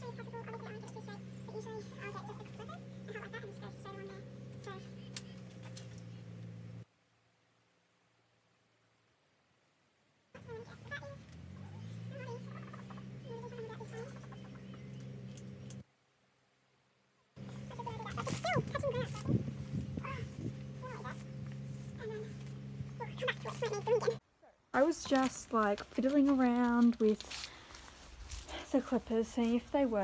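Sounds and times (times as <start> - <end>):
electric clippers humming: 0.0 - 6.8, 17.4 - 24.2.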